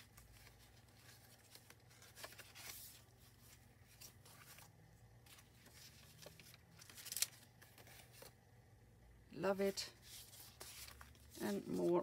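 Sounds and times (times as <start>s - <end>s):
photographs being shuffled: 0.0s - 8.4s, 9.7s - 12.0s.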